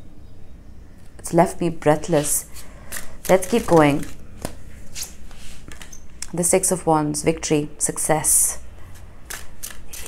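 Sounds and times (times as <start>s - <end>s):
cards rustling: 2.2s - 5.9s.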